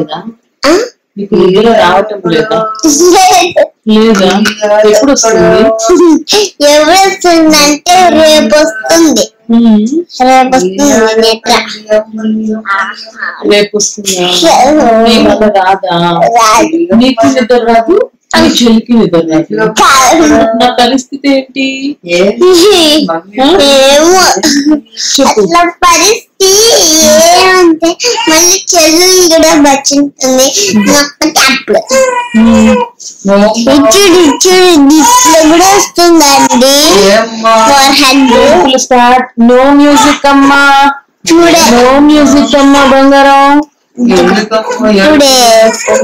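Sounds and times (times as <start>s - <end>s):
girl singing playful tune: 2.1s - 15.6s, 19.5s - 20.9s, 23.6s - 46.0s.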